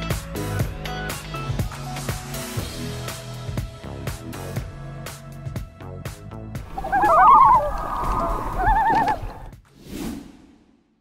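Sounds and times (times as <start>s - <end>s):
quavering animal call: 6.6s - 9.5s.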